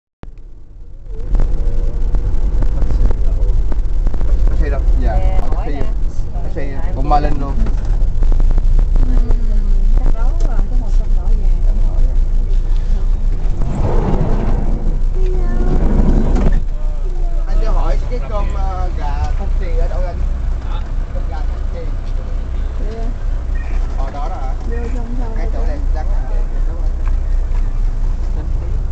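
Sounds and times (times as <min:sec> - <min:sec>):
car engine and road noise: 0:00.2 - 0:28.9
faint voices: 0:00.8 - 0:28.9
people talking: 0:01.0 - 0:08.2, 0:08.8 - 0:28.9.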